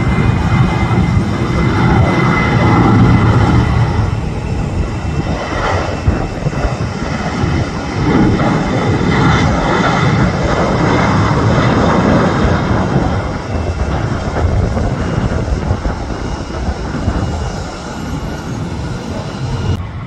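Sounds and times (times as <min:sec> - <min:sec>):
jet engines at takeoff: 0:00.0 - 0:20.0.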